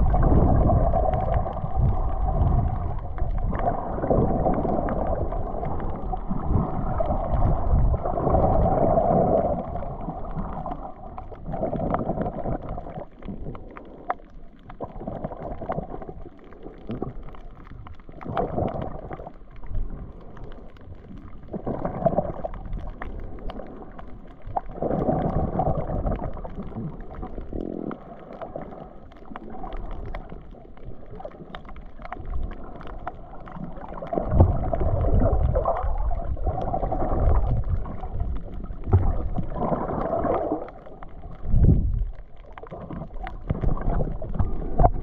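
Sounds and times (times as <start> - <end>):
muffled underwater water noise: 0.0 - 45.0.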